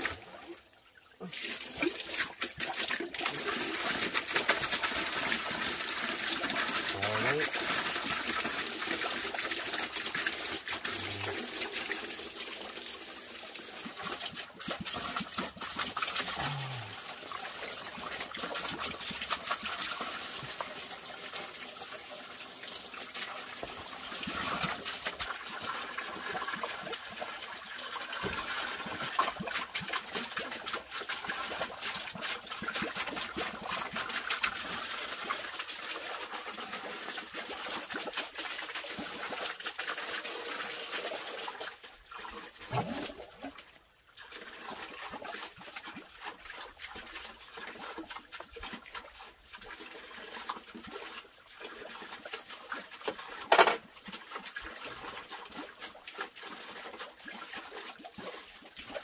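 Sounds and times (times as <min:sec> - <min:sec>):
water trickling and splashing: 0:00.0 - 0:59.0.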